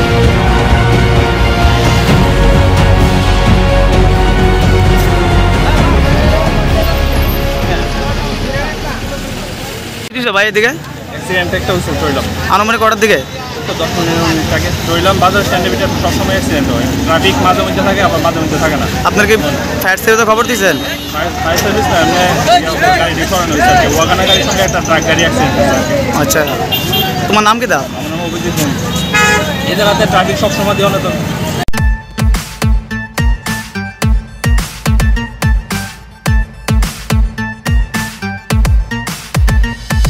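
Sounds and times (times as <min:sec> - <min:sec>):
bystanders' voices: 0:00.0 - 0:31.7
traffic and engine noise: 0:00.0 - 0:39.8
vehicle horn toot: 0:20.4 - 0:21.6, 0:26.4 - 0:27.3, 0:28.0 - 0:31.0.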